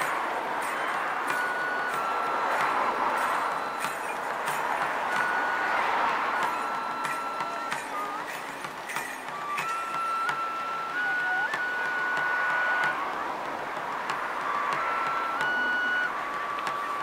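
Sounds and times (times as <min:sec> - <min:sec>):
bamboo flute long notes: 0:00.0 - 0:17.0
sharp percussive strokes: 0:00.0 - 0:17.0.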